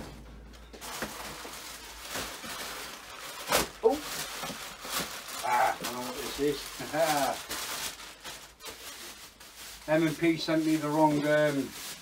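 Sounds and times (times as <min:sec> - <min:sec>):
plastic bag crinkling: 0:00.5 - 0:12.0.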